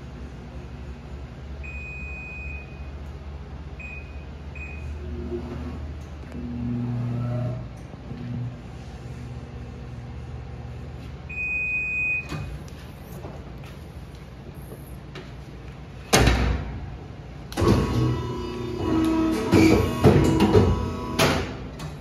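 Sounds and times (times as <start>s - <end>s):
paper cutter pump humming: 17.5s - 21.7s.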